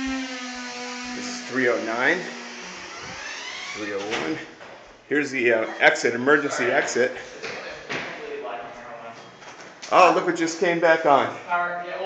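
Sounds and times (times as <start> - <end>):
man speaking: 1.2 - 2.3, 3.8 - 9.2, 9.9 - 12.0.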